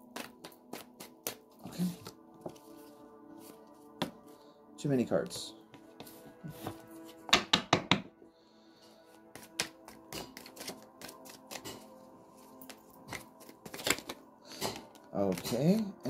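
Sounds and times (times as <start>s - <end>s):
soft background music: 0.0s - 16.0s
cards being shuffled: 0.1s - 3.6s, 9.4s - 11.8s, 12.7s - 15.6s.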